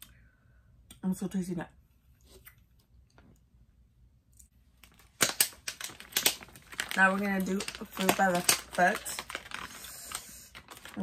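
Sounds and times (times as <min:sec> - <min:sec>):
candy wrapper crinkling: 0:04.8 - 0:11.0.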